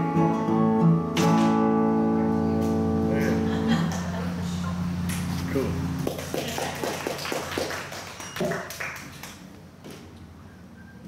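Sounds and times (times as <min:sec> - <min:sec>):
audience applause: 0:06.0 - 0:09.4.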